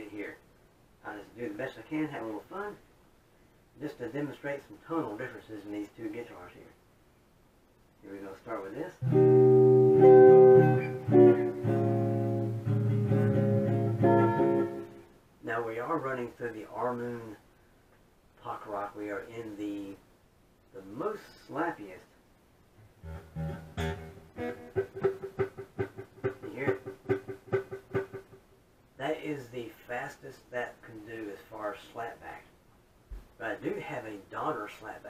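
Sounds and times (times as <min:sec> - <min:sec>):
electric guitar with slapback echo: 0:09.0 - 0:15.0, 0:23.0 - 0:28.4.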